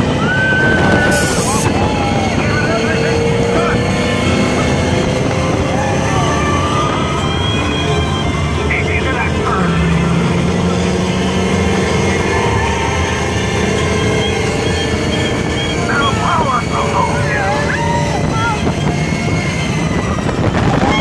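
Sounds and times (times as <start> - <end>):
rush of wind and running noise: 0.0 - 9.6, 11.9 - 21.0
riders shouting: 5.5 - 9.7, 12.0 - 18.8.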